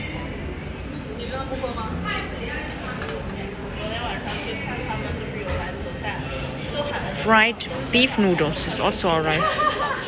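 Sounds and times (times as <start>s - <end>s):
murmur of diners' voices: 0.0s - 10.0s.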